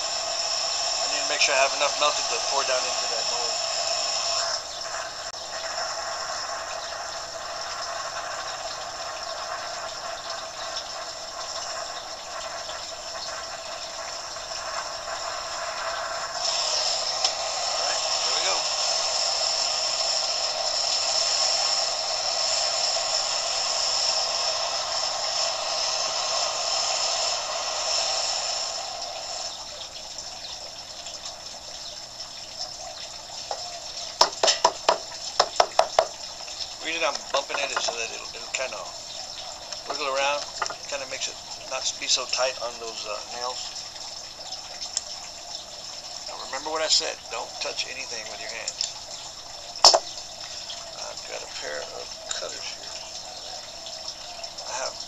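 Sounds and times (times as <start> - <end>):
gas flame hissing: 0.0 - 30.9, 32.9 - 55.0.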